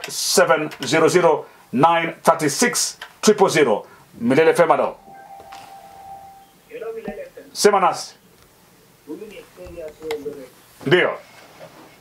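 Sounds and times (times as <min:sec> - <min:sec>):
man speaking: 0:04.2 - 0:05.0
faint steady electronic tone: 0:04.4 - 0:08.3.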